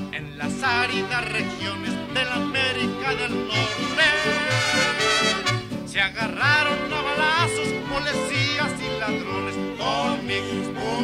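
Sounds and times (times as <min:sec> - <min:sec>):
band playing comic song: 0:00.6 - 0:11.0.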